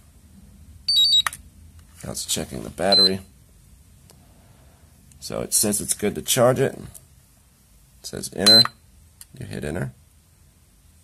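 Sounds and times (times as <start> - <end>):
charger two-tone beep: 0.9 - 1.3, 2.9 - 3.2, 8.5 - 8.8.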